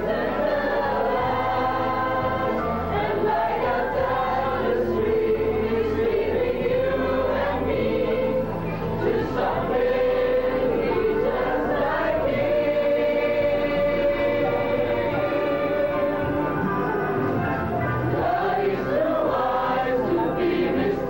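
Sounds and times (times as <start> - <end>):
male choir singing: 0.0 - 16.7, 18.1 - 21.0.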